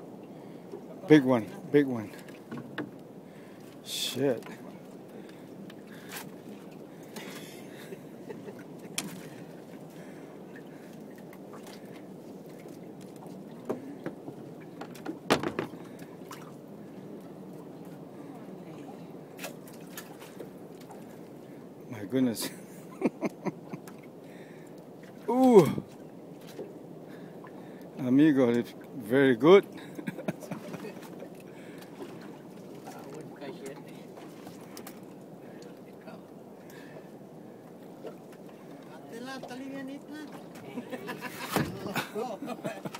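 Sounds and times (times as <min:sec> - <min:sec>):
boat background noise: 0:00.0 - 0:42.9.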